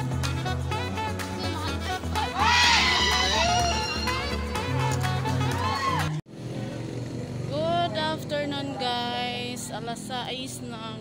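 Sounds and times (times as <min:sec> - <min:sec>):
background music: 0:00.0 - 0:06.2
woman speaking: 0:07.5 - 0:11.0.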